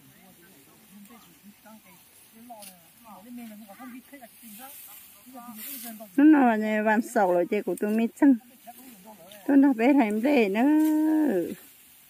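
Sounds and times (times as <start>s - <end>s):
rustling swish of stalks: 0.0s - 12.0s.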